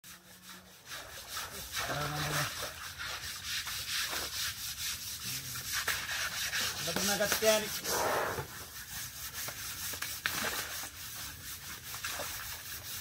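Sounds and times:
scrubbing rough elephant skin: 0.0s - 13.0s.

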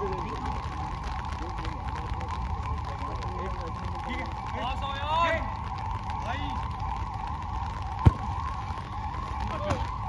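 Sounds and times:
wavering whine: 0.0s - 10.0s
football kick thump: 8.0s - 8.3s.

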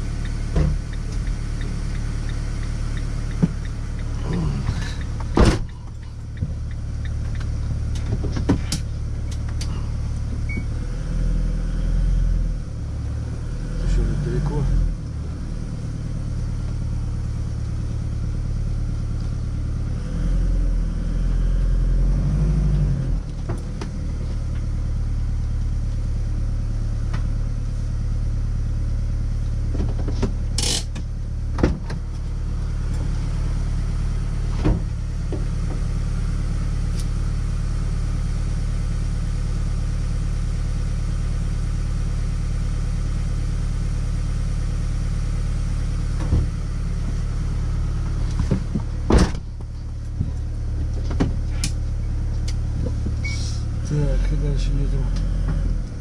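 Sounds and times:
engine idling rumble: 0.0s - 56.0s.

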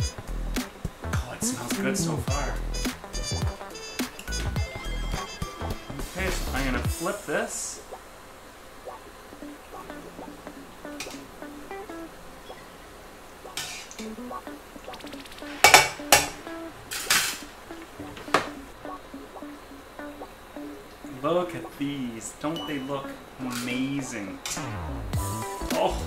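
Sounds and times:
light plucked background music: 0.0s - 8.0s, 8.8s - 12.7s, 13.4s - 26.0s
oil frying: 2.6s - 26.0s.

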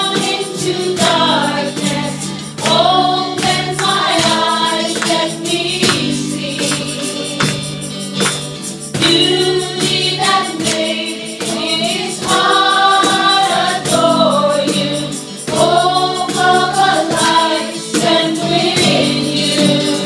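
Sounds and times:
women singing worship song: 0.0s - 8.1s, 9.0s - 20.0s
acoustic guitar: 0.0s - 20.0s
keyboard: 0.0s - 20.0s
steady percussive beat: 0.0s - 20.0s.

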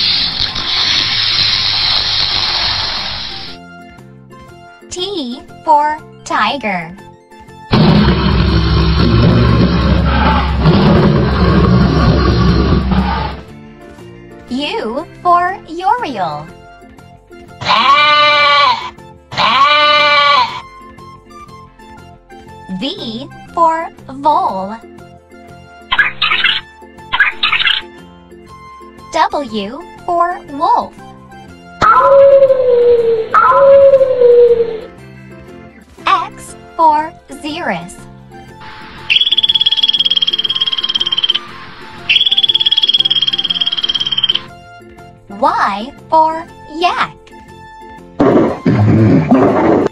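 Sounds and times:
children's background music: 3.3s - 49.9s
sheep bleating: 17.6s - 20.6s
ground squirrel high-pitched trills: 31.8s - 34.8s, 39.0s - 44.5s.

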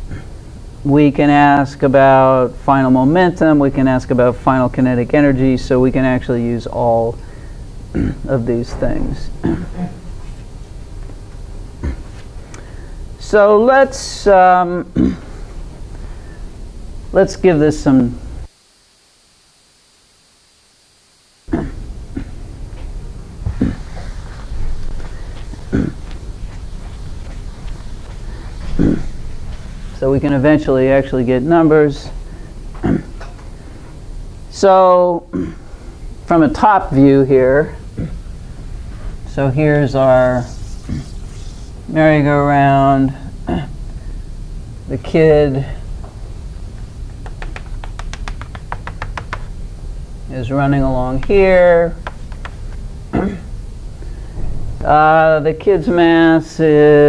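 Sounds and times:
eraser scrubbing a blackboard: 40.2s - 41.9s
chalk tapping on blackboard: 47.2s - 49.5s, 52.0s - 52.8s.

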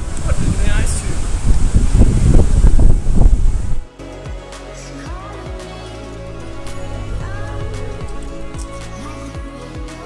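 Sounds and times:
wind buffeting microphone: 0.0s - 3.9s
background music: 3.5s - 10.0s.

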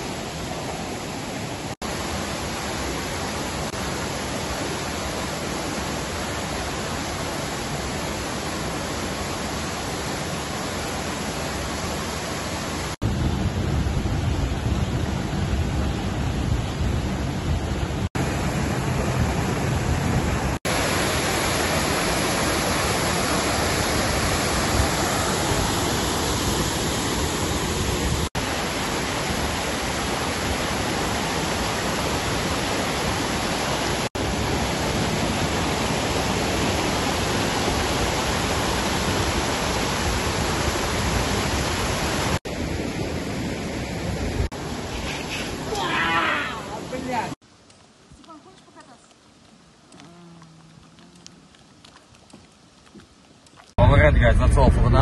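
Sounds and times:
mountain stream rushing: 0.0s - 53.8s.

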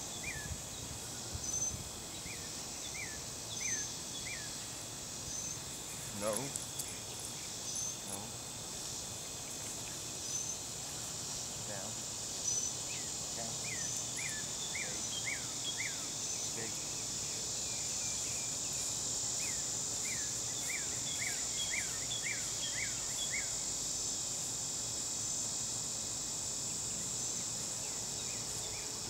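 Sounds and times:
insect chorus drone: 0.0s - 29.0s.

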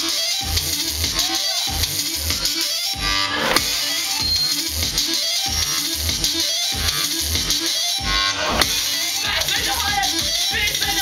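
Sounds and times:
bass-heavy beat: 0.0s - 11.0s.

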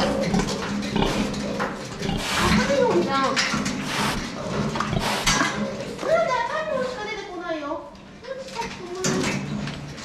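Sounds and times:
pigs vocalizing: 0.0s - 6.2s.

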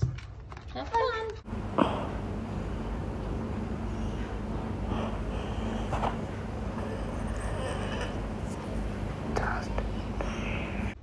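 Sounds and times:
steady low hum: 1.4s - 11.0s
faint whispering: 9.3s - 11.0s.

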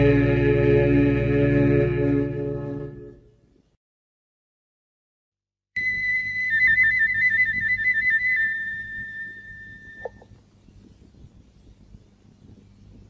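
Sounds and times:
low steady hum: 0.0s - 3.8s, 5.8s - 13.0s
whistled trill: 5.8s - 10.2s.

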